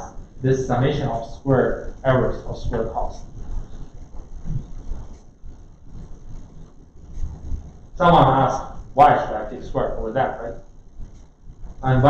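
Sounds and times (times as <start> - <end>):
low rumble of room noise: 0.0 - 12.0.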